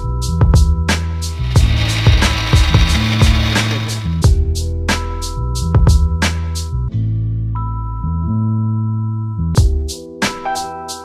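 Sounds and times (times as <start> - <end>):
background music with a beat: 0.0 - 6.9, 9.5 - 11.0
coffee grinder whirring: 1.3 - 4.3.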